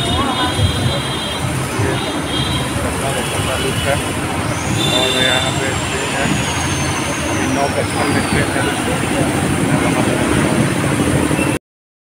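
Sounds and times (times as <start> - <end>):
indistinct voices: 0.0 - 10.8
city road traffic: 0.0 - 11.6.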